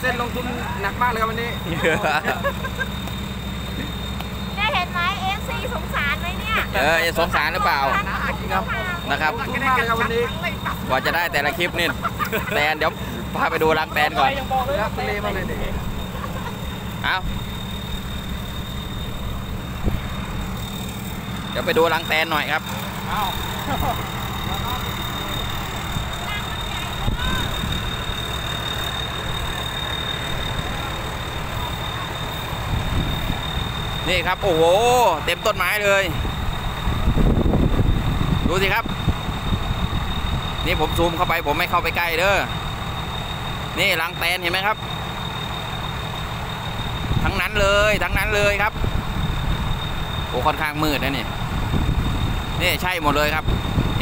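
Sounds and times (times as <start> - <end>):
thin high tone: 0.0 - 37.0
vehicle engine idling: 0.0 - 54.0.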